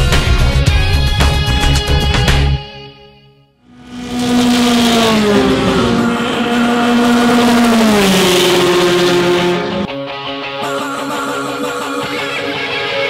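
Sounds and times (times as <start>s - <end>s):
race car engine at high revs: 3.7s - 9.9s.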